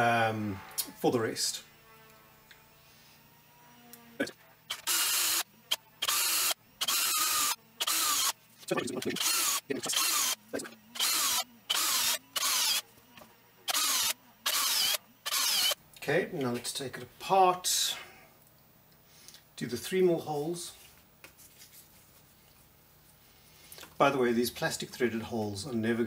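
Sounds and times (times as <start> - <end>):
electric drill whining: 2.0 - 8.4, 9.0 - 15.8.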